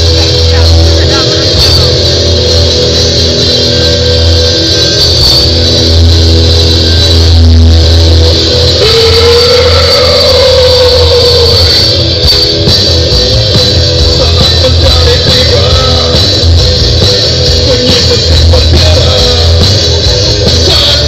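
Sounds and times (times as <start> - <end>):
distorted live rock band: 0.0 - 21.0.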